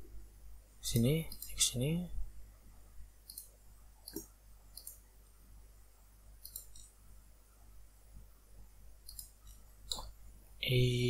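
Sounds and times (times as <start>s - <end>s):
steady low hum: 0.0s - 11.0s
computer mouse clicks: 0.9s - 1.6s, 3.2s - 5.0s, 6.4s - 7.0s, 9.0s - 10.2s.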